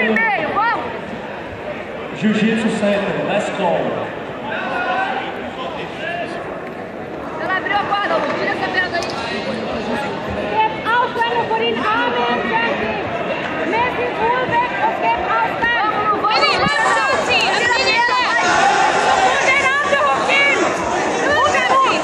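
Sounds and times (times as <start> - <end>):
crowd talking: 0.0 - 22.0.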